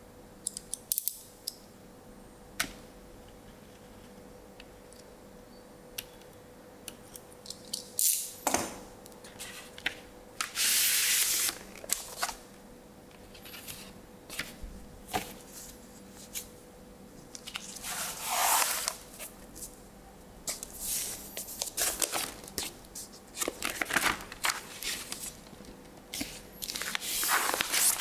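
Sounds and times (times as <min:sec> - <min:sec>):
record sliding hiss: 0:09.3 - 0:12.6, 0:17.2 - 0:19.9, 0:20.5 - 0:28.0
packaging rustling: 0:21.5 - 0:25.4, 0:26.2 - 0:28.0.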